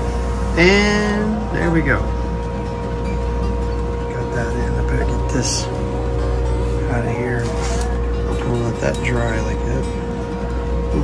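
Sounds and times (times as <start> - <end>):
resonator guitar music: 0.0 - 11.0
steady electrical hum: 0.0 - 11.0.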